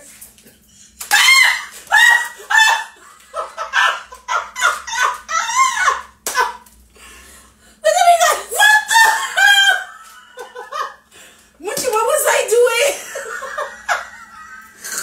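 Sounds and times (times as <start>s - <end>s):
women laughing loudly: 1.2s - 6.6s, 8.1s - 11.1s, 12.8s - 15.0s.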